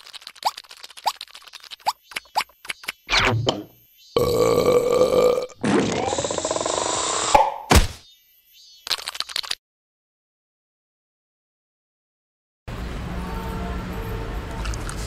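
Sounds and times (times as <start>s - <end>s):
quick clicks: 0.0s - 3.1s, 8.8s - 9.6s.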